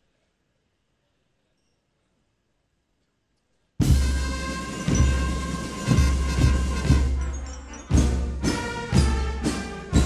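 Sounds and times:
band playing sustained chords: 3.8 - 10.0.

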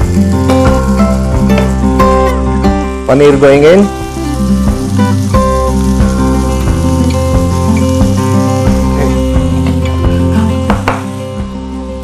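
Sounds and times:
instrumental background music: 0.0 - 12.0
vegetables sizzling in oil: 0.0 - 12.0.

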